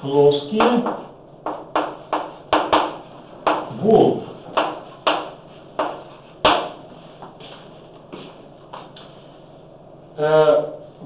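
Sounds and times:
chalk knocking on blackboard: 0.6 - 3.7, 4.5 - 9.2.

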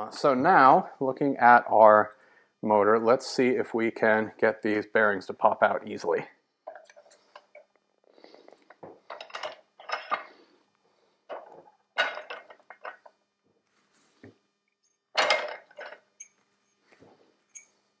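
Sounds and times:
metal parts clinking and clattering: 9.1 - 10.4, 11.3 - 13.1, 14.8 - 17.7.

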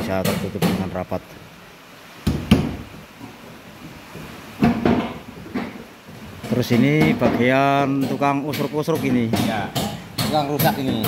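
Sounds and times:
knocks on wooden frames: 0.1 - 1.0, 2.2 - 11.0.

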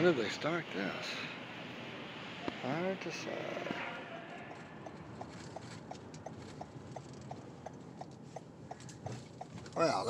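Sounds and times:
faint engine and road noise: 0.0 - 10.0
car turn signal ticking: 4.8 - 9.7.

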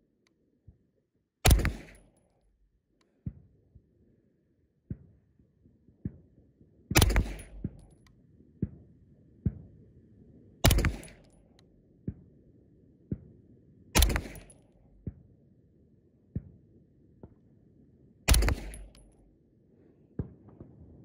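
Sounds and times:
pistol shots: 1.5 - 2.0, 7.0 - 7.8, 10.6 - 11.2, 14.0 - 14.6, 18.3 - 19.0.

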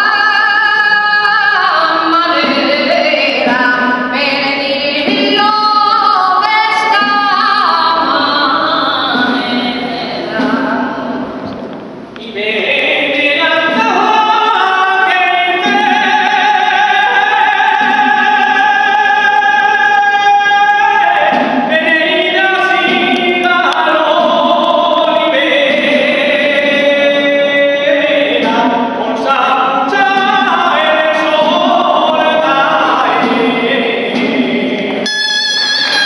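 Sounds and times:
men singing unaccompanied: 0.0 - 11.1, 12.2 - 35.1.

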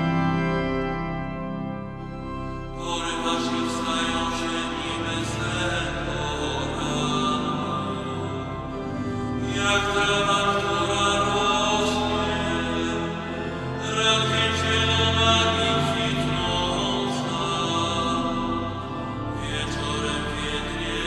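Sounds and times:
pipe organ playing sustained chords: 0.0 - 21.0.

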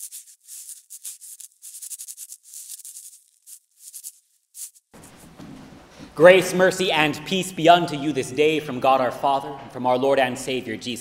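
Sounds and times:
pencil scribbling on paper: 0.0 - 4.8.

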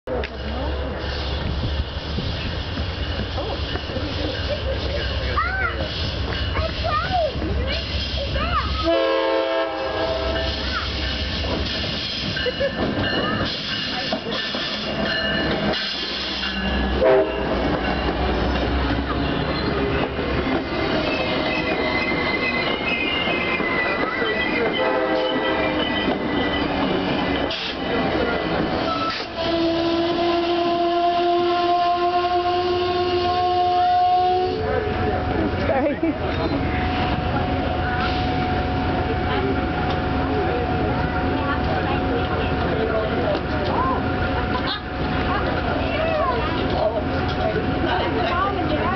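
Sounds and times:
train rumbling past: 0.1 - 48.9
train horn: 8.8 - 10.7, 16.8 - 17.6, 24.7 - 25.8, 28.9 - 34.7
high brake squeal: 20.8 - 27.9.

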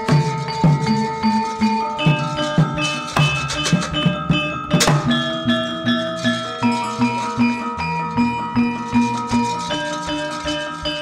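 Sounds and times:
bronze metallophones ringing: 0.0 - 11.0.

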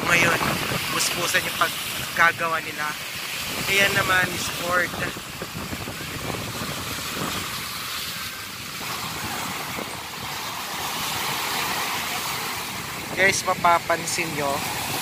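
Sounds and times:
small waves washing against rocks: 0.0 - 15.0
wind on microphone: 0.0 - 15.0.

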